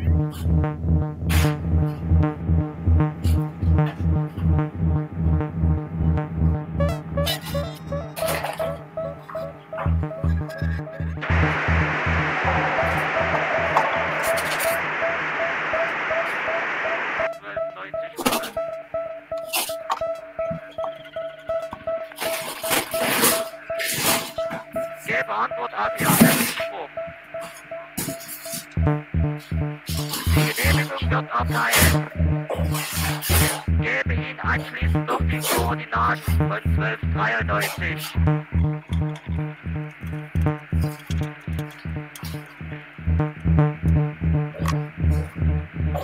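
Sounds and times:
improvised electronic music: 0.0 - 46.0
low pulse: 0.0 - 46.0
crackles and clicks: 0.1 - 46.0
held tone: 11.2 - 17.3
loud noise hiss: 11.2 - 17.3.

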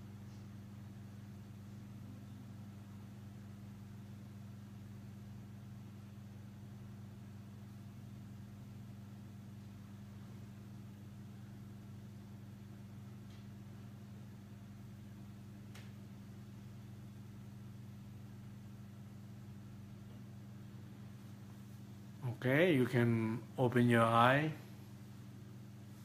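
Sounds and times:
low hum with faint hiss: 0.0 - 26.0.

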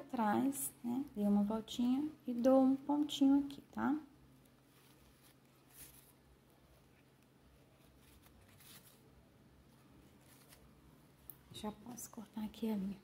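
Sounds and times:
ribbon and thread rustling: 4.4 - 12.9.

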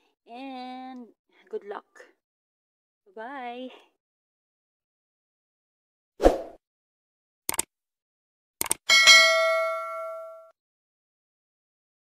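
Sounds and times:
bell-like notification ding: 8.9 - 10.5.

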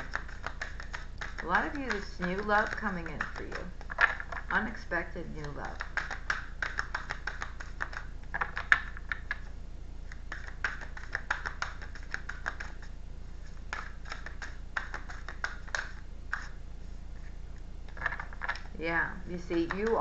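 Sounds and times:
cards being shuffled: 0.0 - 4.7, 5.3 - 18.8, 19.5 - 20.0.

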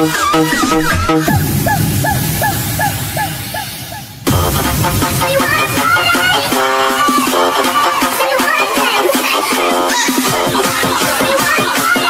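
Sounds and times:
low bass line: 0.8 - 7.6.

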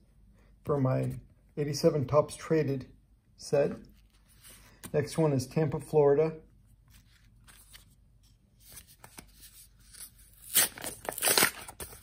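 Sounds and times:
envelope ripping: 9.9 - 12.0.

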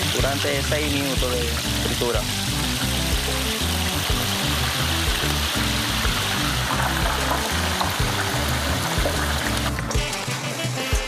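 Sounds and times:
background music with bass beat: 0.0 - 11.0
oil sizzling while deep-frying: 0.0 - 11.0.

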